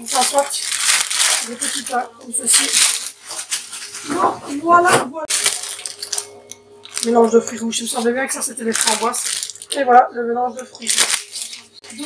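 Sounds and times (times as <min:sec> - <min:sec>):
plastic bags crinkling: 0:00.0 - 0:04.2, 0:05.3 - 0:12.0.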